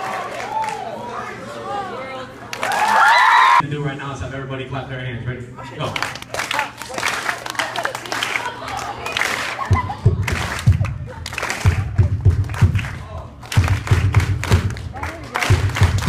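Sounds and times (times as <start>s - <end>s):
audience chatter: 0.0s - 2.8s, 5.6s - 12.3s.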